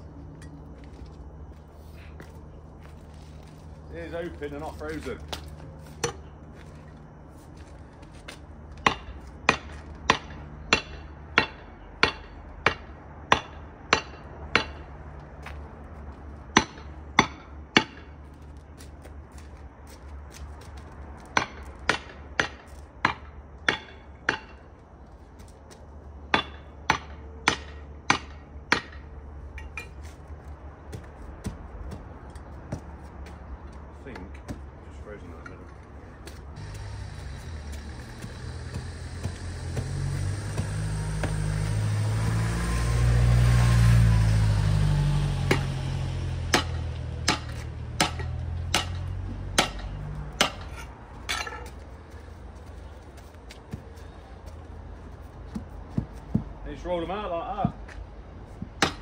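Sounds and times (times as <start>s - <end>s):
passing vehicle engine rumble: 24.8s - 59.0s
pickaxe striking concrete: 46.5s - 49.0s.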